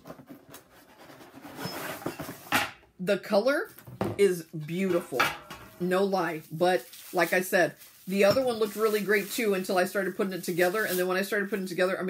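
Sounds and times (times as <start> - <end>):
cardboard and parts rustling: 0.0 - 2.8, 5.5 - 11.2.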